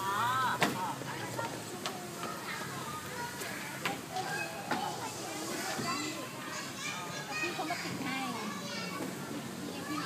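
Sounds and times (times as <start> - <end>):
children chattering and calling out: 0.0 - 10.0
children playing: 0.0 - 10.0.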